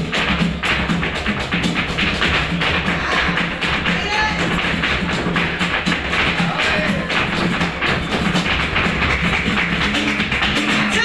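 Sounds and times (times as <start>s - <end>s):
dancer's footwork on stage: 0.0s - 11.0s
flamenco guitar: 0.0s - 11.0s
hand clapping: 0.0s - 11.0s.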